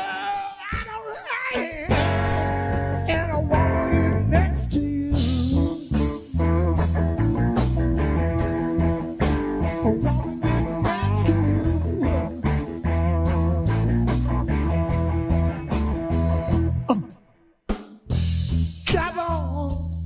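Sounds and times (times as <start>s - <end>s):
blues-rock band playing: 0.0s - 17.3s, 18.0s - 19.7s
electric guitar lead: 1.5s - 17.2s.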